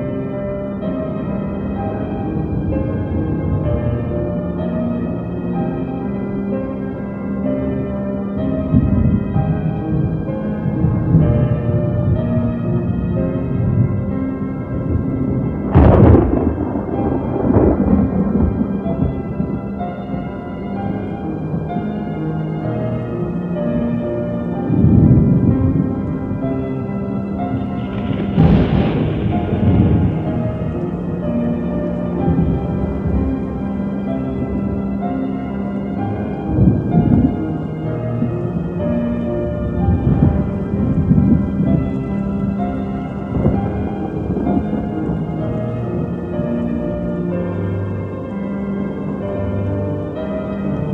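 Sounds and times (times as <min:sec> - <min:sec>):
held synth chords: 0:00.0 - 0:50.9
thunderclap rumbling: 0:00.0 - 0:50.9.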